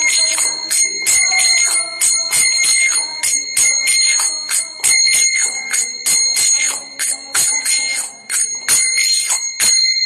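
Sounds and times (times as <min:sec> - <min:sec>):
small hand cymbals struck in rhythm: 0:00.0 - 0:10.0.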